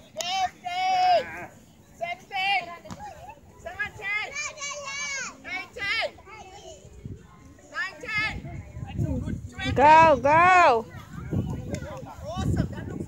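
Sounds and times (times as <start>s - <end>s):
children shouting as they play: 4.2s - 5.4s.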